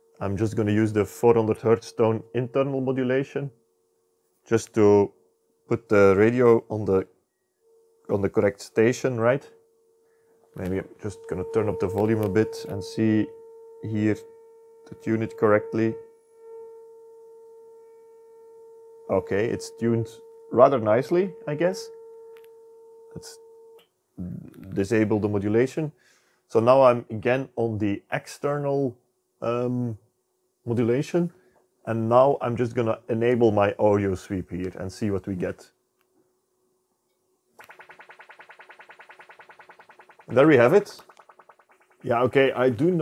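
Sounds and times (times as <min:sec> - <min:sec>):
steady test tone: 0:08.0 - 0:09.4, 0:10.5 - 0:25.3, 0:37.6 - 0:43.0.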